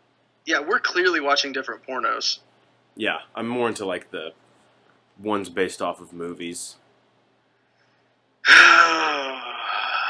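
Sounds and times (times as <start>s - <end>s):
person moaning: 8.5s - 10.0s.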